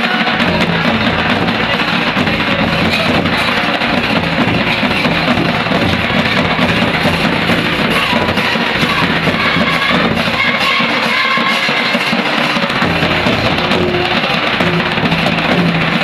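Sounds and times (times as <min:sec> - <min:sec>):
kettle drums rapid strokes: 0:00.0 - 0:16.0.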